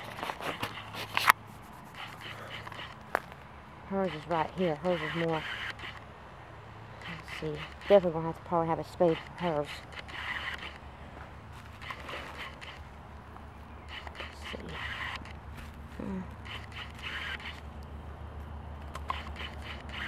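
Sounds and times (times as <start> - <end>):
steady low hum: 0.0 - 20.0.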